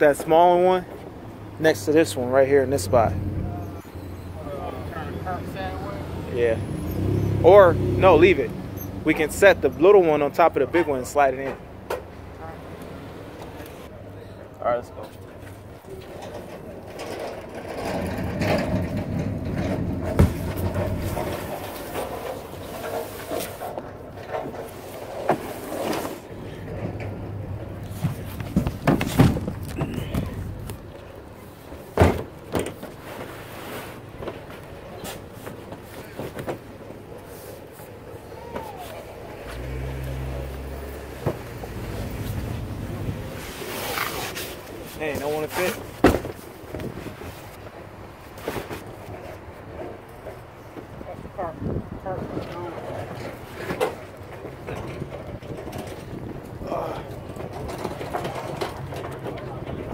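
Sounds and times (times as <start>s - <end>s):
boxes knocking and thudding: 17.6s - 22.2s, 27.8s - 30.8s, 31.8s - 33.3s, 45.7s - 47.2s
cardboard scraping on truck bed: 17.6s - 23.8s, 24.6s - 26.3s, 27.8s - 30.6s, 31.7s - 37.7s, 39.4s - 47.7s.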